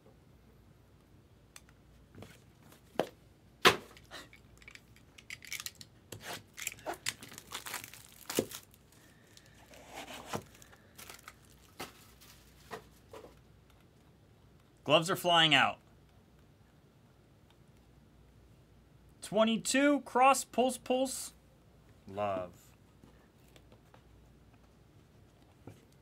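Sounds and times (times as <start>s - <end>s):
plastic wrap crinkling and tearing: 5.2s - 9.7s, 10.4s - 12.7s.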